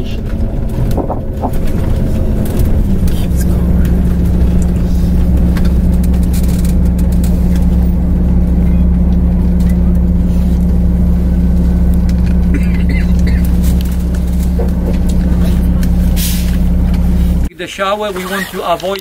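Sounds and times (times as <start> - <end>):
bus engine and road noise: 0.0 - 19.0.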